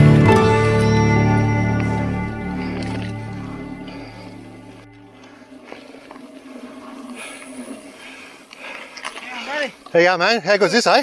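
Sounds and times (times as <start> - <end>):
background music: 0.0 - 5.3
bike tyres rolling on dirt: 1.6 - 11.0.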